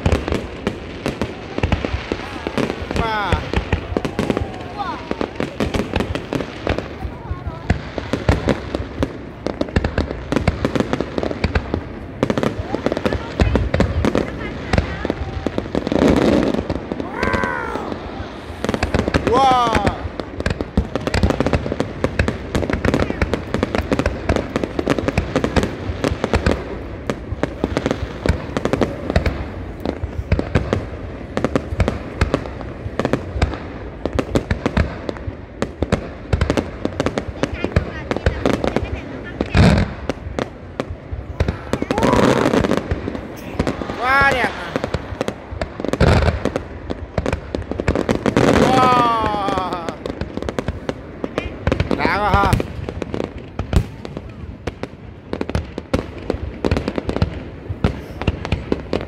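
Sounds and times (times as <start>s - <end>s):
crowd voices: 0.0s - 59.0s
fireworks bursting and crackling: 0.0s - 59.0s.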